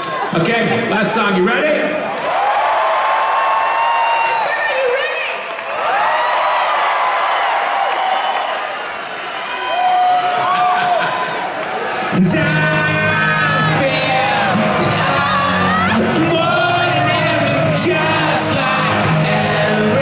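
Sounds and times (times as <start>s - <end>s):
crowd cheering and whooping: 2.0s - 20.0s.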